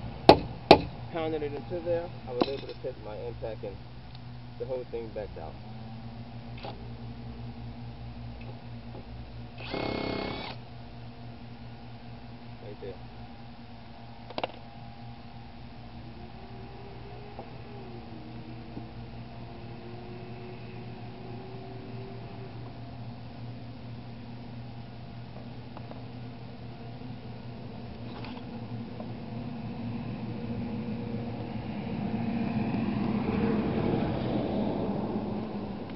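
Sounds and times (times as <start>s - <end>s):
low engine hum: 0.0s - 35.9s
impact driver hammering: 0.3s - 0.9s
motor whining: 8.5s - 10.7s, 14.3s - 24.0s
vehicle noise: 14.2s - 35.9s.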